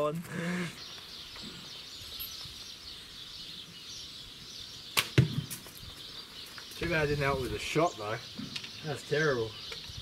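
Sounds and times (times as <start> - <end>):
arrow hitting target: 5.0 - 5.7.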